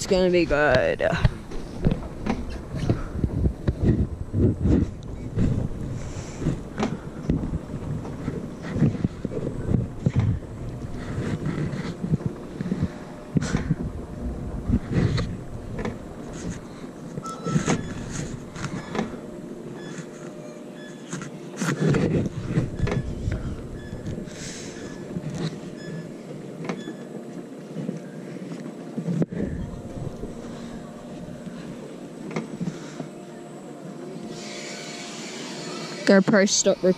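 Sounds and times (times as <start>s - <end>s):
coaster sled rumbling on rail: 0.0s - 36.9s.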